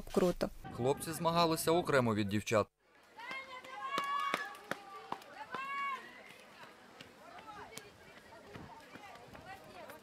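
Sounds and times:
running footsteps on asphalt: 3.1s - 10.0s.

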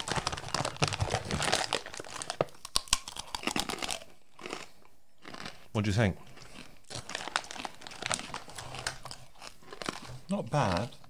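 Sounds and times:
crisp crunchy chewing: 0.0s - 11.0s.

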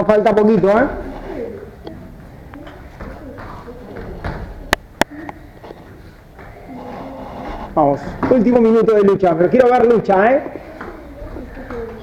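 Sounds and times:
bare feet tapping on foam mats: 1.6s - 6.6s, 8.0s - 8.8s, 10.7s - 12.0s.

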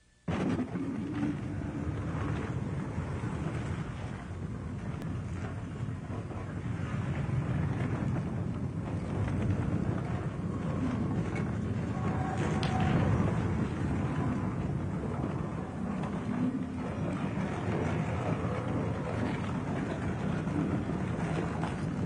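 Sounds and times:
low wind-like rumble: 0.3s - 22.0s.

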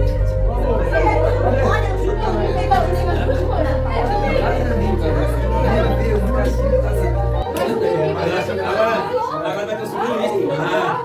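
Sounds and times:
background music with deep bass: 0.0s - 8.7s
people talking and exclaiming: 0.0s - 11.0s.

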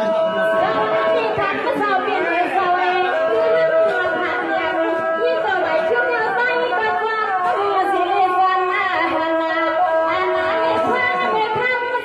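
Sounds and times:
people chattering: 0.0s - 12.0s
woman singing over a pa: 0.0s - 12.0s.

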